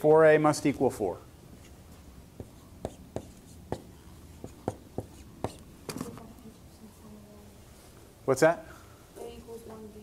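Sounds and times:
marker writing on whiteboard: 1.5s - 6.2s.

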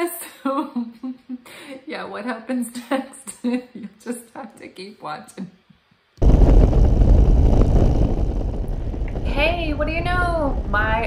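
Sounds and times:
wind buffeting microphone: 6.2s - 11.0s.

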